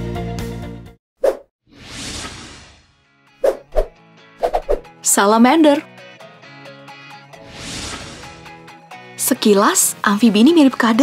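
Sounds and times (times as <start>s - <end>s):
background music: 0.0s - 1.0s, 2.9s - 11.0s
whoosh transition effect: 7.4s - 8.4s.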